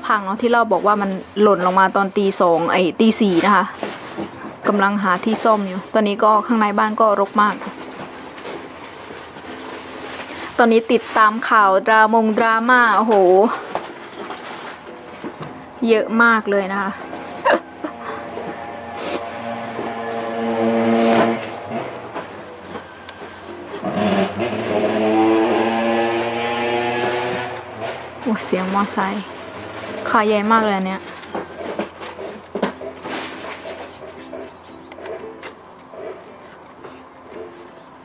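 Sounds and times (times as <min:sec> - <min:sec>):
plastic bag rustling: 0:07.1 - 0:15.8, 0:16.7 - 0:38.0
motorcycle engine passing by: 0:18.0 - 0:22.2, 0:23.8 - 0:29.0.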